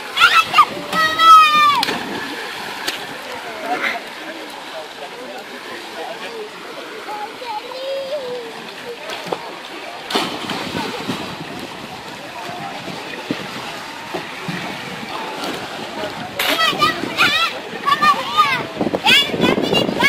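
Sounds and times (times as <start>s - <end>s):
splash into pool water: 0.0s - 4.6s, 8.8s - 17.3s
young people talking and calling out: 0.0s - 20.0s.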